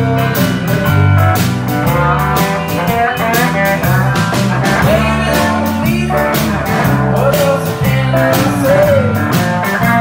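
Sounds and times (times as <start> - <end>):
bass guitar: 0.0 - 10.0
drums and cymbal strokes: 0.0 - 10.0
guitar melody with bent notes: 0.0 - 10.0.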